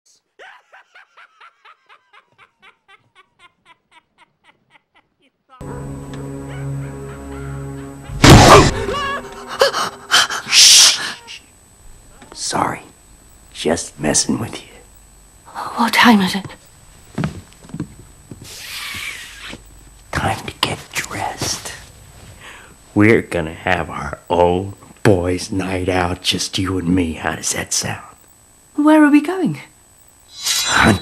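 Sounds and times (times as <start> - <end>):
rapid snickering laugh: 0.4 - 5.6
eerie film music drone: 5.6 - 11.3.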